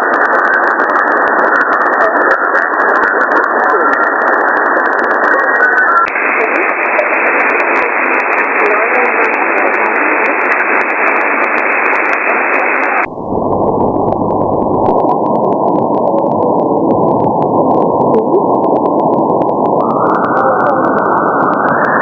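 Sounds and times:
faint weak radio signal: 0.0 - 22.0
radio band noise hiss: 0.0 - 22.0.

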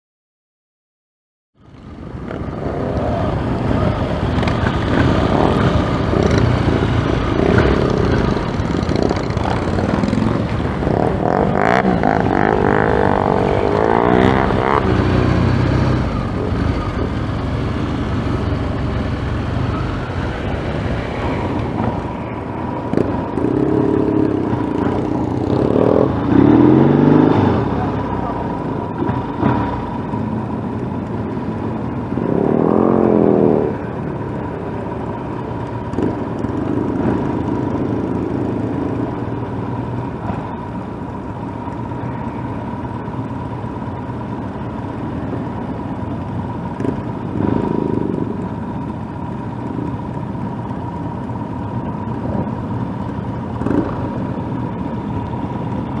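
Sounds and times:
motorcycle accelerating: 1.6 - 56.0
motorcycle engines running: 1.6 - 56.0
wind and road noise: 1.6 - 56.0.

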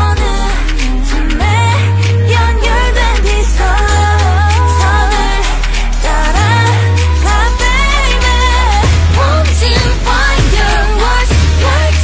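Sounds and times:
female singing: 0.0 - 12.0
heavy bass beat: 0.0 - 12.0.

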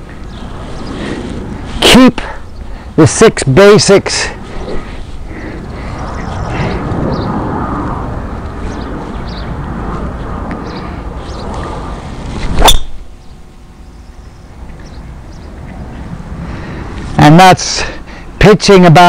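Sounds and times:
steady rushing noise: 0.0 - 19.0.

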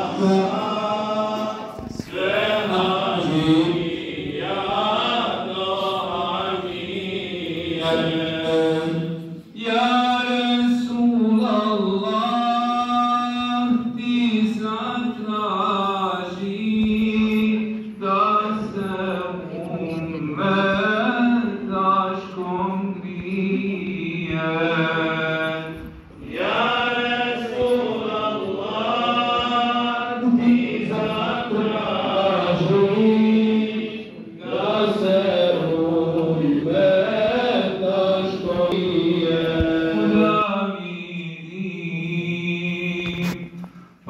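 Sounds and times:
men chanting religious melody: 0.0 - 43.6.

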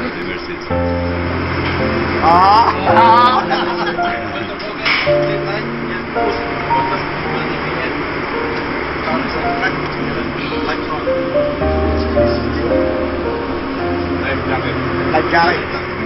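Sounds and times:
steady background noise: 0.0 - 16.0
melody over low bass line: 0.7 - 16.0.

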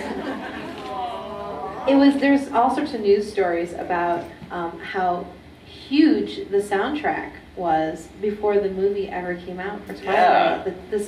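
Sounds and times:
audience laughing: 0.0 - 1.7
overlapping chatter of voices: 0.0 - 2.5.

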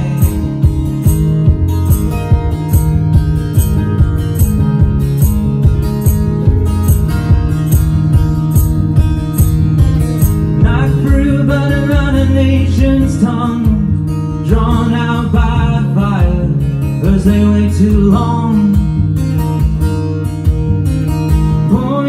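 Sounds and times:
man singing: 0.0 - 0.8, 10.6 - 19.1, 21.5 - 22.0
acoustic guitar strumming: 0.0 - 22.0.

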